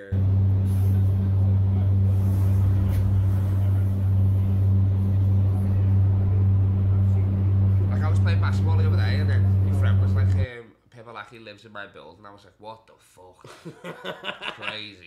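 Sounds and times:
vehicle hum and rumble: 0.0s - 10.5s.

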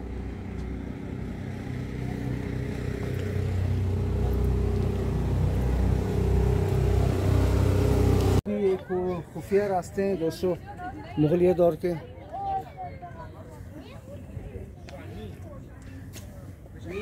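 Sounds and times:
vehicle engine humming: 0.0s - 8.4s.

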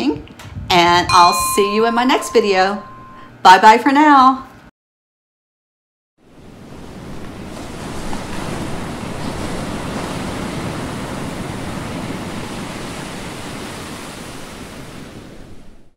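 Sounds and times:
ocean waves washing on shore: 6.3s - 15.9s.

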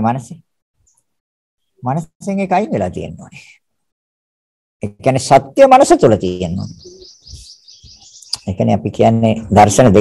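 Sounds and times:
birds chirping: 5.6s - 10.0s.

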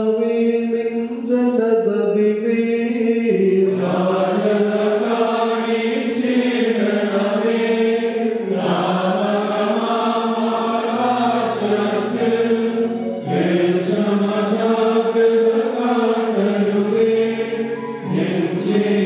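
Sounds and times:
men chanting a hymn: 2.3s - 19.0s.

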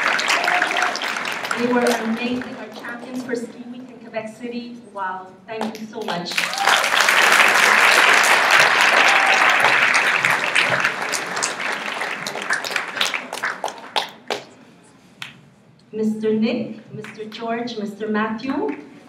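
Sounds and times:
audience applauding: 0.0s - 3.4s, 6.0s - 14.6s.

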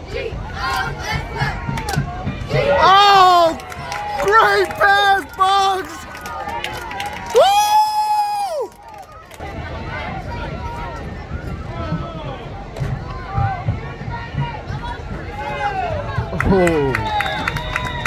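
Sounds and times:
crowd shouting and talking: 0.0s - 18.0s.

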